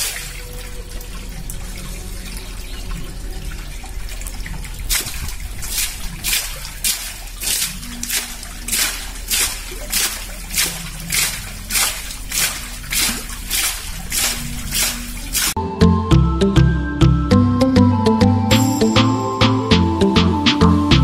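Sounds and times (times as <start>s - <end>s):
muddy water splashing from pipe: 0.0s - 15.6s.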